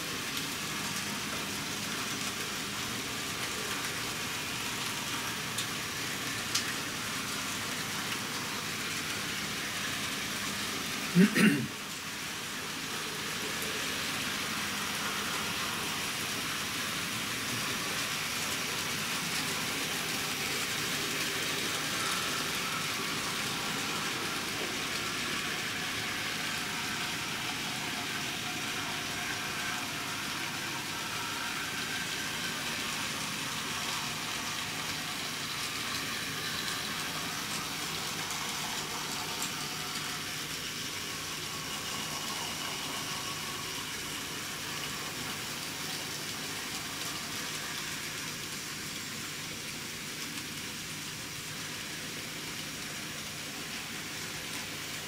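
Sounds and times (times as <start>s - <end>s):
model train motors whirring: 0.0s - 55.0s.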